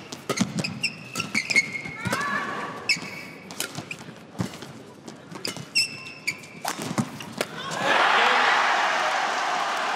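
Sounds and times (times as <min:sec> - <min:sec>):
shoes squeaking on court: 0:00.0 - 0:07.5
racket striking shuttlecock: 0:00.1 - 0:02.3, 0:03.4 - 0:04.7.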